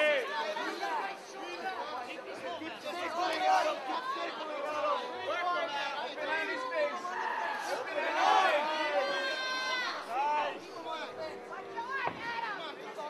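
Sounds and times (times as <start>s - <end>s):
crowd shouting and talking: 0.0s - 13.0s.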